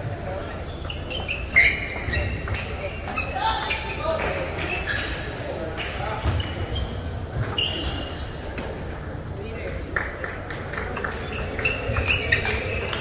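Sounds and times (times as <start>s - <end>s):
background voices chattering: 0.0s - 13.0s.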